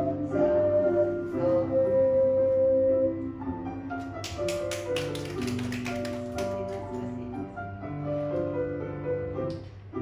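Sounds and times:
ocarina melody: 0.0 - 3.7
keyboard accompaniment: 0.0 - 10.0
audience clapping: 4.2 - 7.1.

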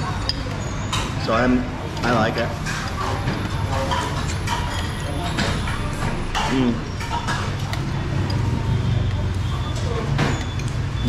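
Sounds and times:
diners chattering: 0.0 - 11.0
spoons clinking against bowls: 0.0 - 11.0.

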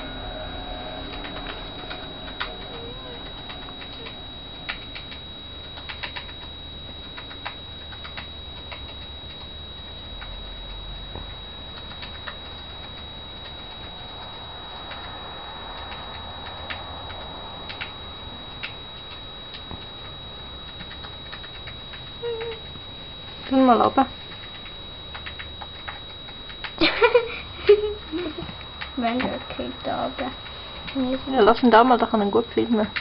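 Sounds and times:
faint high whine: 0.0 - 33.0.

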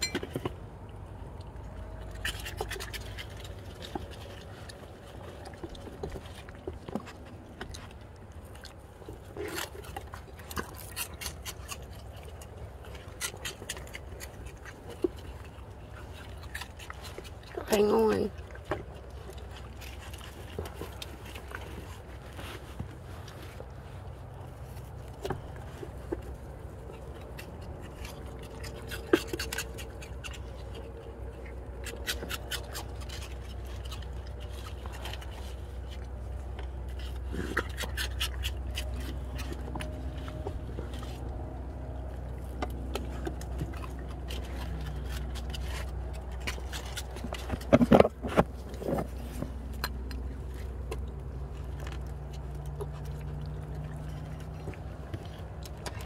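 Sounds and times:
steady low hum: 0.0 - 56.0
claws scraping and clicking on plastic: 1.4 - 17.6, 18.6 - 56.0.

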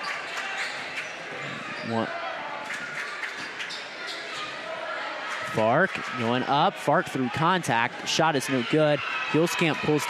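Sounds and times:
crowd noise in gymnasium: 0.0 - 10.0.

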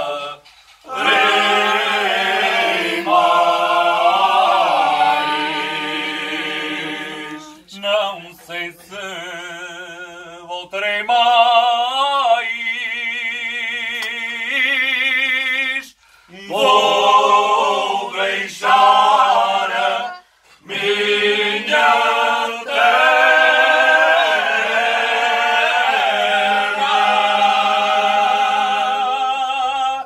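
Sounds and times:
men singing unaccompanied: 0.0 - 30.0.

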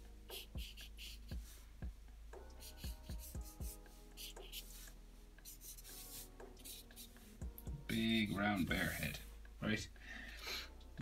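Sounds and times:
marker scratching on paper: 0.3 - 1.6, 2.5 - 7.4.

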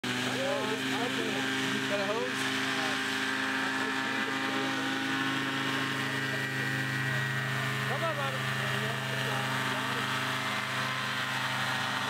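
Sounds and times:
paramotor engine droning: 0.0 - 12.0.

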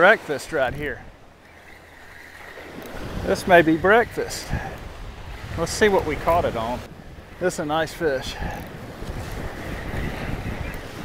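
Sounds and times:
wind rumbling on microphone: 0.5 - 11.0
small surf breaking: 1.4 - 11.0.

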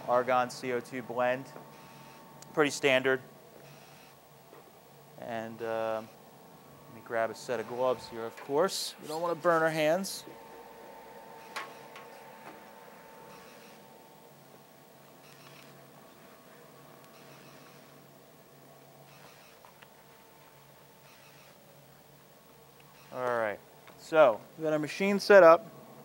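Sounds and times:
faint steady hum: 0.0 - 26.0
soft hiss: 0.0 - 26.0.

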